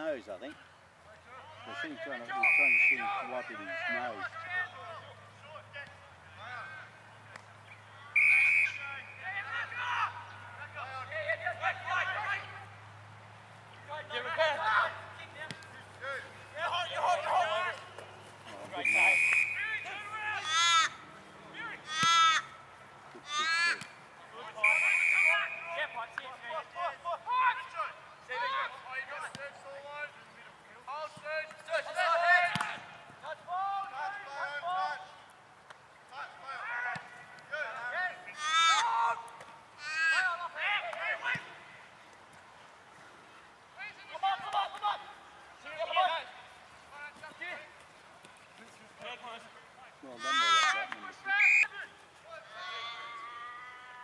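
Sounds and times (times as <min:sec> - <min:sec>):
players shouting: 0:01.2 - 0:13.0, 0:13.6 - 0:35.3, 0:36.1 - 0:41.9, 0:43.8 - 0:48.0, 0:48.6 - 0:54.0.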